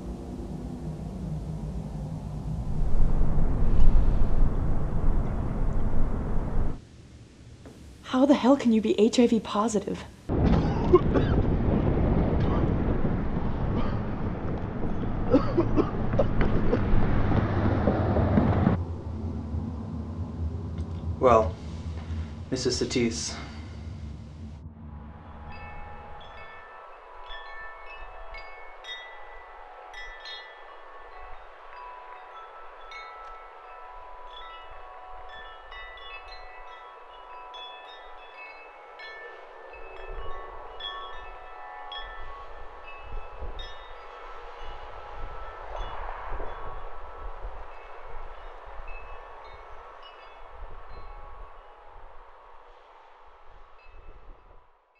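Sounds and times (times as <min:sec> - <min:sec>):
steady rushing noise: 0:00.0 - 0:08.1, 0:11.2 - 0:27.3
low rumbling gusts: 0:00.0 - 0:33.0, 0:39.7 - 0:54.6
chimes ringing: 0:25.1 - 0:52.2.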